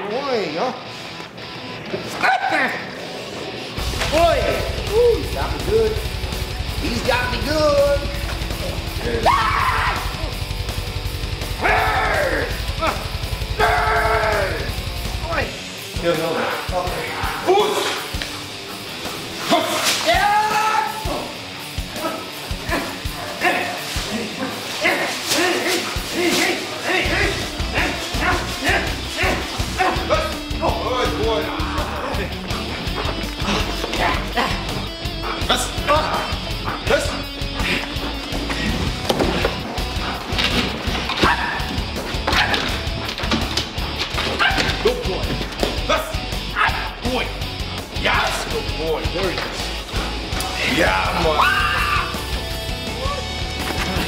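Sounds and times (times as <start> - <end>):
background music with bass line: 3.6 - 24.8, 25.4 - 54.0
people's voices: 11.6 - 42.9
dog barking and whining: 44.3 - 44.8.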